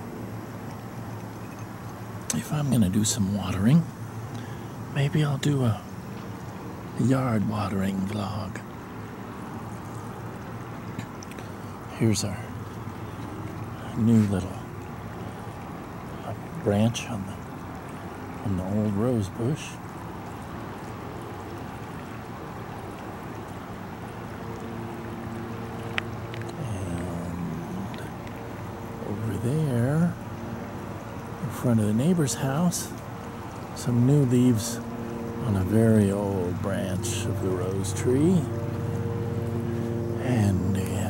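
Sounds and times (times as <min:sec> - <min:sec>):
low steady hum: 0:00.0 - 0:41.0
water from a hose running: 0:00.0 - 0:41.0.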